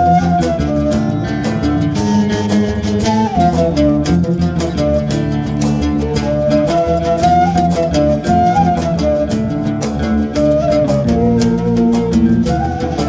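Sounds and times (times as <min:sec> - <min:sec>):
electric guitar: 0:00.0 - 0:13.0
percussion steady beat: 0:00.0 - 0:13.0
sliding melody line: 0:00.0 - 0:13.0.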